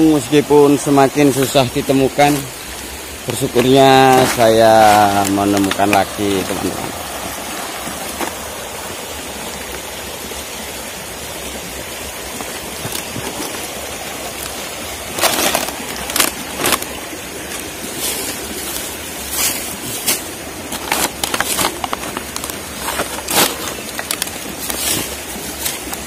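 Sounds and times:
rocky stream rushing: 0.0s - 26.0s
dry twigs crackling and snapping: 12.3s - 26.0s.

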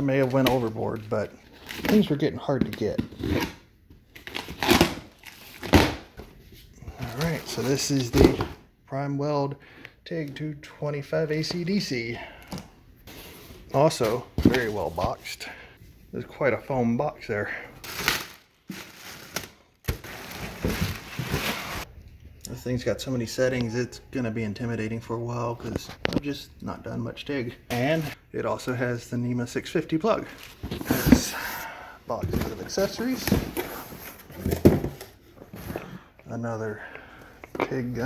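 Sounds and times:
cardboard packaging handled: 17.8s - 21.8s
plastic wrapping rustling: 17.8s - 21.9s.

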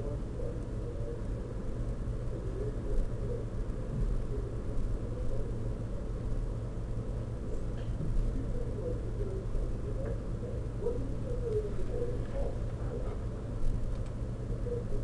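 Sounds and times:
faint muffled sounds: 0.0s - 15.0s
low background rumble: 0.0s - 15.0s.

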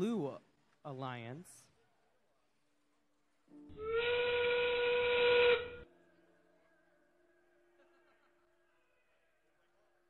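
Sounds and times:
steam train whistle: 3.8s - 5.9s.

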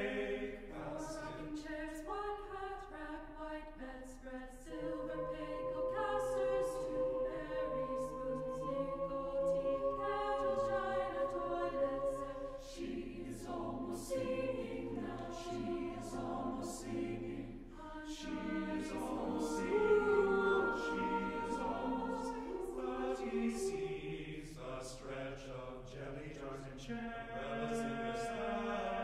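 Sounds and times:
unaccompanied choir singing softly: 0.0s - 29.0s.

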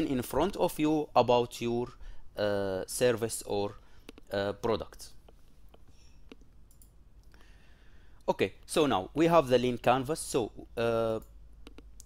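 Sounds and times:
faint clicks: 5.2s - 7.4s.

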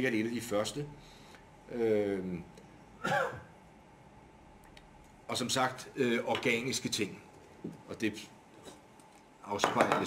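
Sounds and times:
man clearing his throat: 3.0s - 3.5s.

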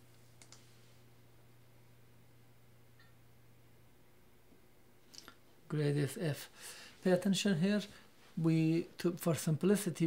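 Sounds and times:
faint low hum: 0.0s - 10.0s
computer mouse clicks: 0.4s - 0.7s.

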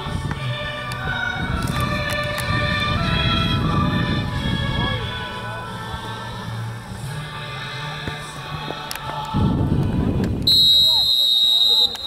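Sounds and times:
low rumbling noise: 0.0s - 8.6s
music: 0.0s - 12.0s
referee's whistle blast: 10.5s - 12.0s.

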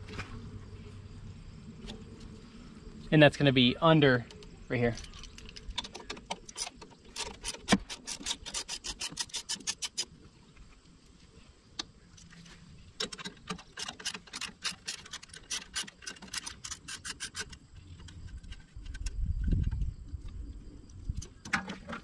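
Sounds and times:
ratchet wrench clicking: 4.9s - 10.1s, 13.0s - 17.6s.

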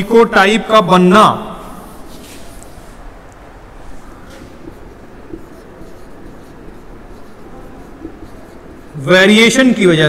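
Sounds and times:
low room hum: 0.0s - 10.0s
marker pen writing on whiteboard: 3.8s - 9.8s.

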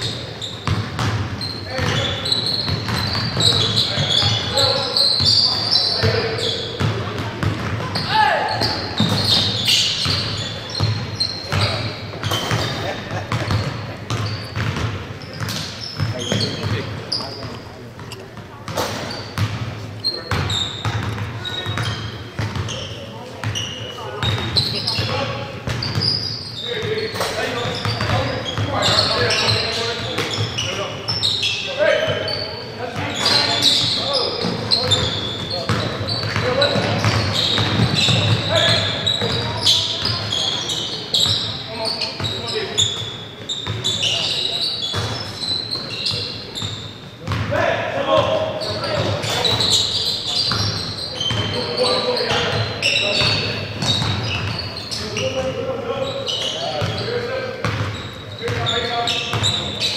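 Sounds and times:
sneaker squeaks: 0.0s - 59.9s
ball bouncing on hardwood court: 0.6s - 4.7s, 6.0s - 22.8s, 33.0s - 40.2s, 52.3s - 54.6s, 57.6s - 58.7s.

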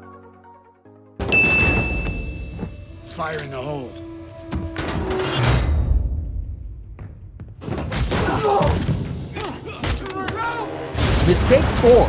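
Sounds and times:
film music: 0.0s - 12.0s.

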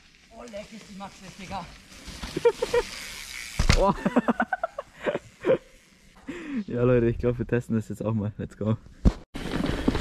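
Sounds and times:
bike tyres hissing over soil: 0.0s - 6.8s.

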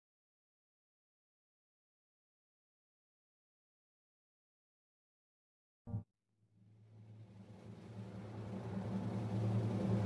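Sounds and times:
low rumbling drone: 5.9s - 10.0s.

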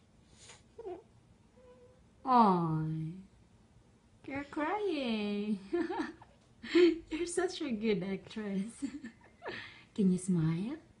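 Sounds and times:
toddler girl crying quietly: 0.8s - 2.0s.

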